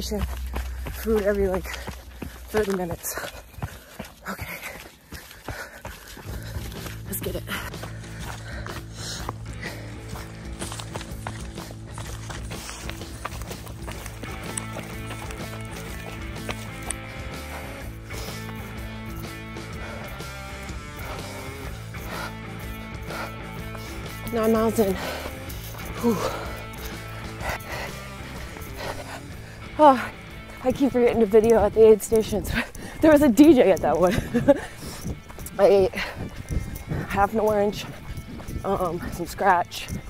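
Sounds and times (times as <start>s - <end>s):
running footsteps on rocky trail: 0.0s - 40.0s
background music sustained notes: 6.2s - 40.0s.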